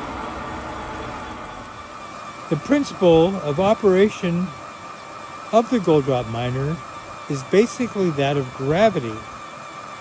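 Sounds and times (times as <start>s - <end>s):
water pumps humming: 0.0s - 10.0s.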